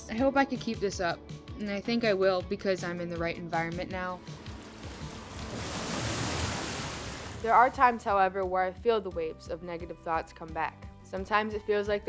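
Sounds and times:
ocean wave rushing in: 4.2 - 7.6.

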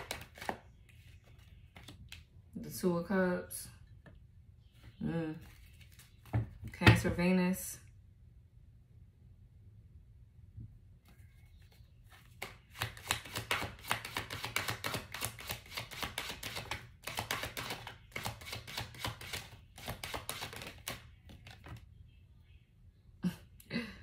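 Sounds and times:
cards being shuffled: 0.0 - 2.3, 5.4 - 6.4, 11.0 - 21.8.

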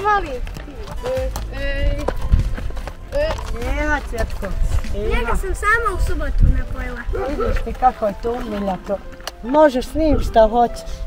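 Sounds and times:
horse hoofbeats on dirt: 0.0 - 10.7.

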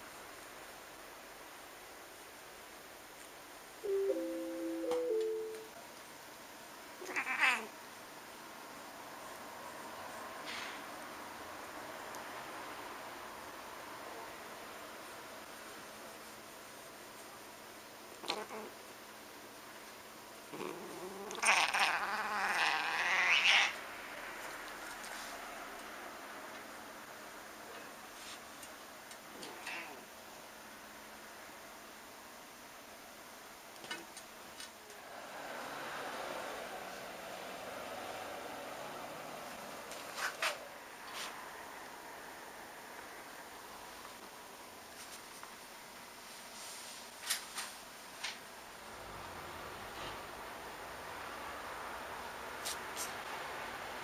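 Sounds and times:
steady overlapping notes: 3.9 - 5.7
cat meowing: 7.0 - 7.7, 20.6 - 23.8.

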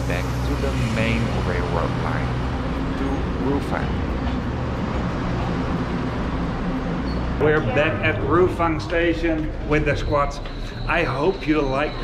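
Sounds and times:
low train engine hum: 0.0 - 12.0.

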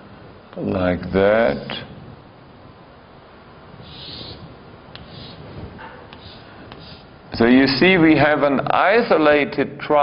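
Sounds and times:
faint room noise: 0.0 - 10.0
pen scratching a line: 3.8 - 5.5, 6.1 - 7.1.

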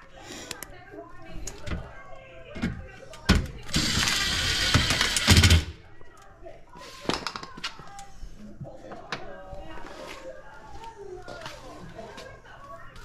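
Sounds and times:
faint background voices: 0.0 - 13.0.

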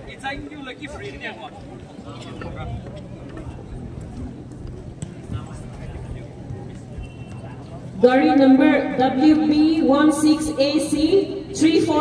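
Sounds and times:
people chatting in a crowd: 0.0 - 12.0.

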